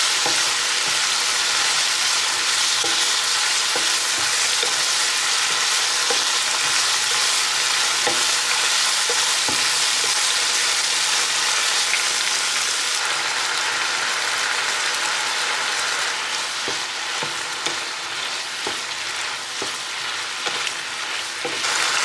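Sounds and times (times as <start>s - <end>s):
vegetables sizzling in a frying pan: 0.0s - 22.0s
spatula scraping and tapping pan: 0.1s - 10.3s, 16.6s - 21.7s.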